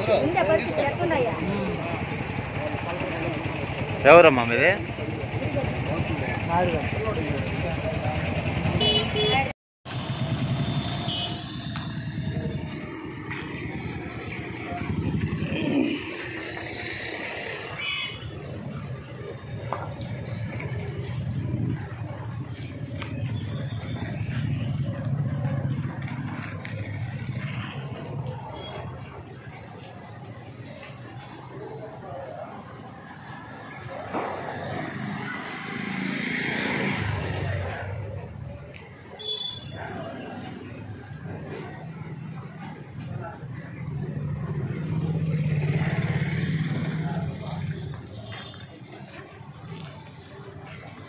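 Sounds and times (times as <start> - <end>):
motorcycle passing by: 0.0 - 38.6, 40.0 - 51.0
vehicle engine running: 0.0 - 39.4.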